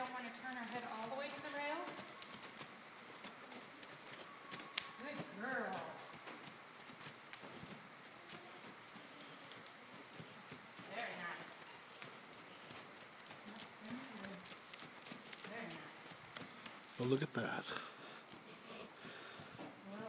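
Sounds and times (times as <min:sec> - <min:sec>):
horse hooves on dirt: 0:00.0 - 0:20.0.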